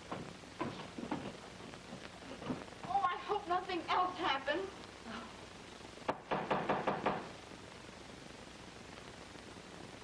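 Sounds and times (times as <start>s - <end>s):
knocking on a door: 6.1s - 7.3s.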